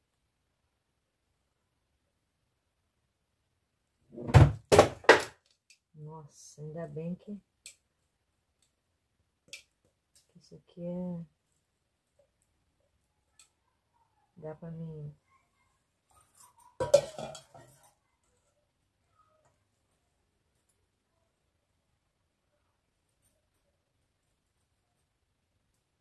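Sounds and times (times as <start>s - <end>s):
light knocks and clinks: 16.1s - 18.0s
metal bowl clanking down: 16.8s - 17.9s.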